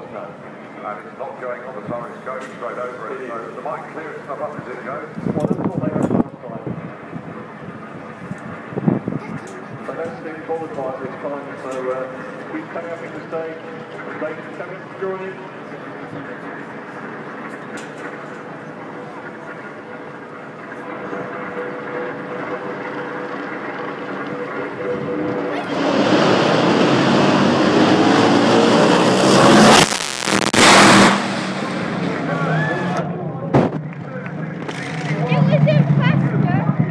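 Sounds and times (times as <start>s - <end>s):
dragster engines at full throttle: 0.1s - 36.9s.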